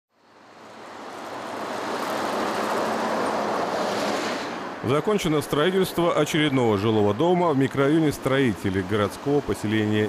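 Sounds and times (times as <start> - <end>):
bus engine and tyre noise: 0.1 - 10.0.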